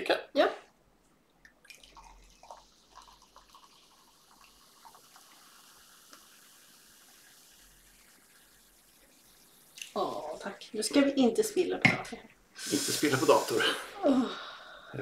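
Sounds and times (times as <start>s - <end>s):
soft drink trickling into a glass: 1.4s - 10.4s.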